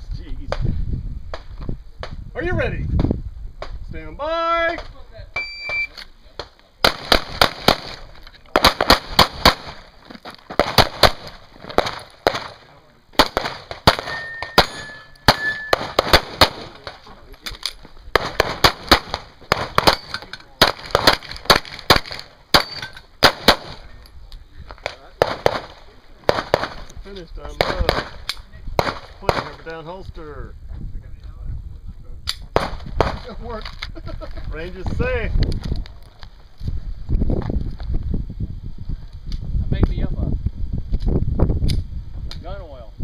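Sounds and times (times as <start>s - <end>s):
handgun shots: 13.2s - 16.9s, 17.6s - 23.8s.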